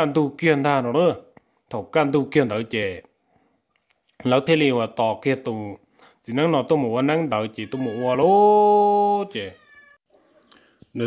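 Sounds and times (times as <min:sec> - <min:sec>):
person speaking: 0:04.0 - 0:09.7.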